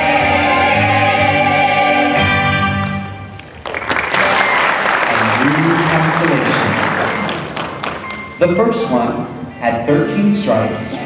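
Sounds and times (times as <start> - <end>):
audience applause: 3.4 - 9.0
person speaking: 8.4 - 11.0.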